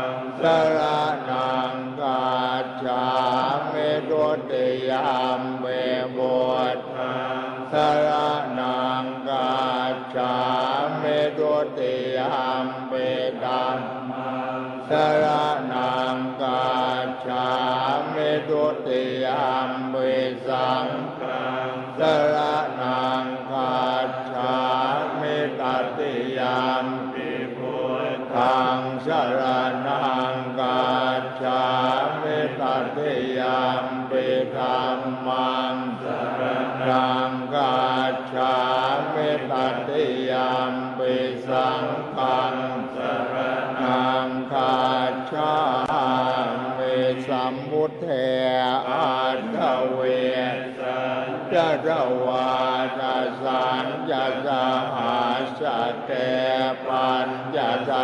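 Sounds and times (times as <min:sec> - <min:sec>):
monks chanting in unison: 0:00.0 - 0:58.0.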